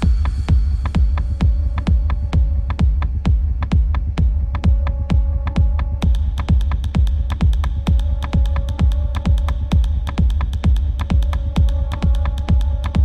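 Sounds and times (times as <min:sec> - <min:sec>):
four-on-the-floor kick drum: 0:00.0 - 0:13.0
steady sub-bass rumble: 0:00.0 - 0:13.0.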